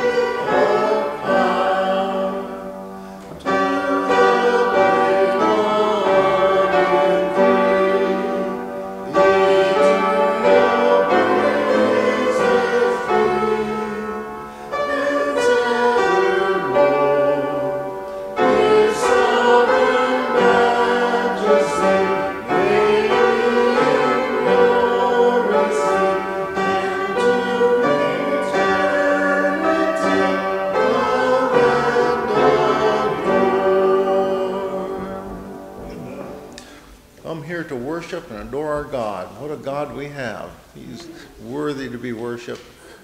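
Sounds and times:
accompaniment chords: 0.0s - 42.6s
congregation singing a hymn: 0.0s - 43.0s.

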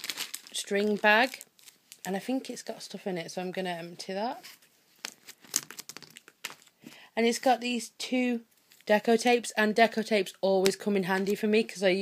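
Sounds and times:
plastic packaging crinkling: 0.0s - 2.4s, 5.0s - 6.9s.

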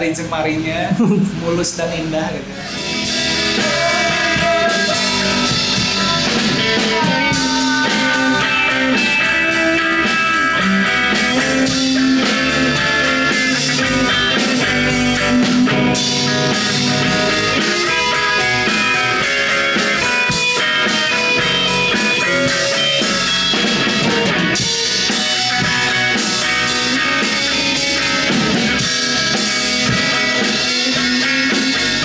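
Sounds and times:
bass guitar: 0.0s - 32.0s
drum kit: 0.0s - 32.0s
electric guitars: 0.0s - 32.0s
person singing: 2.7s - 9.6s.

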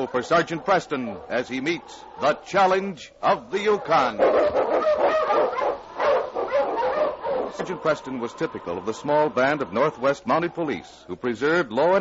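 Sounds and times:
huskies barking and yelping: 0.0s - 11.1s.

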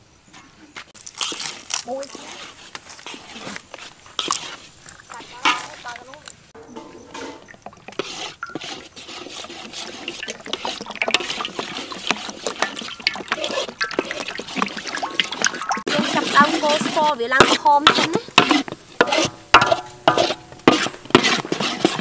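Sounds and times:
oil trickling and crackling in wok: 0.9s - 22.0s.

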